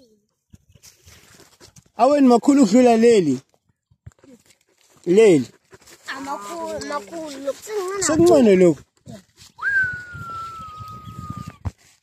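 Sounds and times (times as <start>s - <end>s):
rustling in grass: 4.2s - 12.0s.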